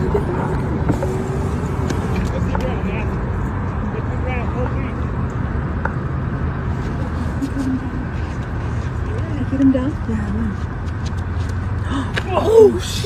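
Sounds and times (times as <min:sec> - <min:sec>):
car engine and tyres rumble: 0:00.0 - 0:13.0.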